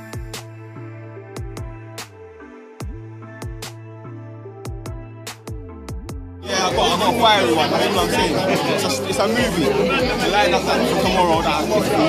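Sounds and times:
man talking: 6.4s - 12.0s
people chattering: 6.4s - 12.0s.

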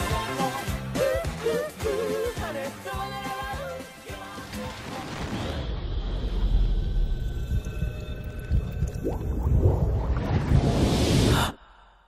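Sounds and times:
low rumble: 5.6s - 12.0s.

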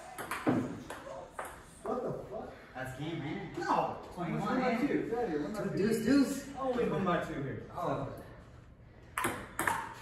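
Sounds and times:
ping-pong ball hits: 0.0s - 1.6s, 9.2s - 10.0s.

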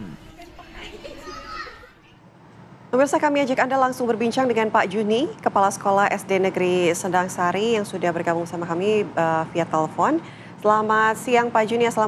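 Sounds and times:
children chattering: 0.0s - 2.2s.

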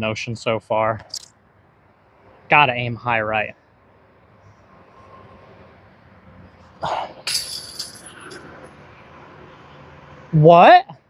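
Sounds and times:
disc striking chain basket: 7.2s - 8.5s.

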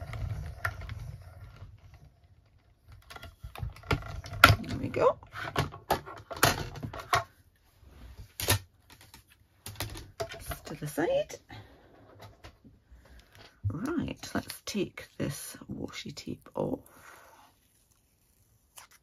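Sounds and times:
hand-cranked machine rolling: 0.0s - 5.0s
plastic clicks and clacks: 0.0s - 7.3s, 8.4s - 11.0s.

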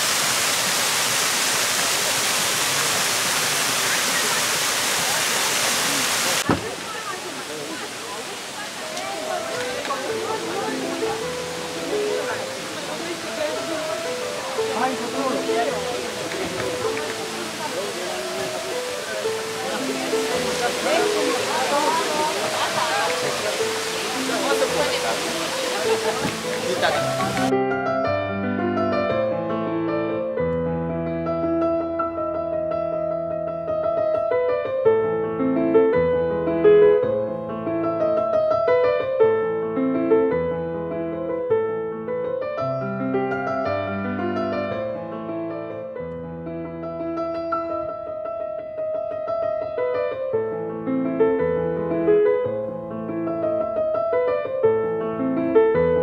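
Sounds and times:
water rushing over rock: 0.0s - 27.5s
people talking: 2.7s - 27.5s
background music: 8.9s - 47.8s.

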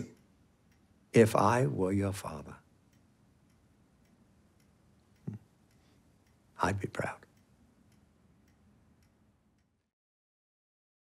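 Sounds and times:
soft ticking: 0.0s - 9.9s.

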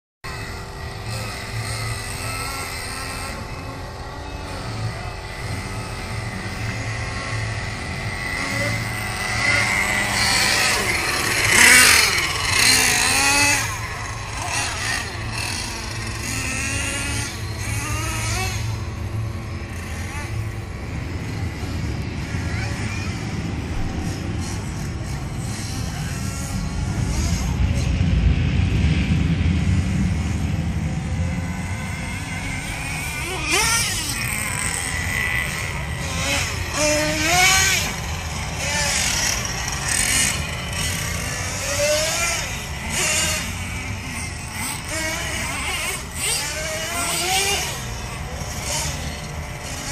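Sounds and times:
rc car engines revving: 0.3s - 49.9s.

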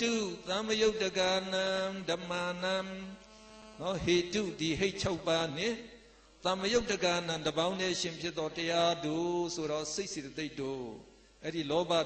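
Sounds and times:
man chanting in monotone: 0.0s - 3.2s, 3.8s - 12.0s.

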